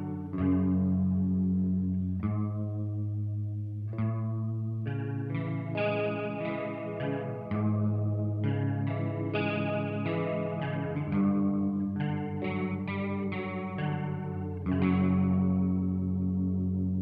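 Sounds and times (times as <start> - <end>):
doom metal electric guitar: 4.0 - 16.5.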